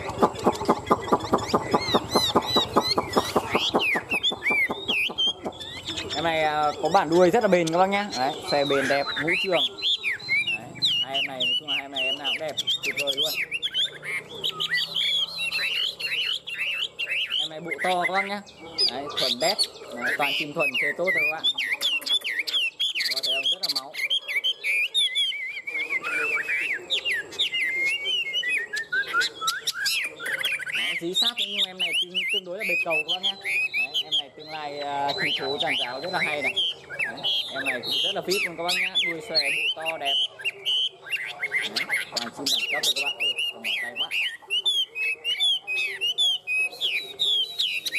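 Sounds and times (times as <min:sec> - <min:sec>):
bird singing whistled notes: 0:00.0 - 0:47.9.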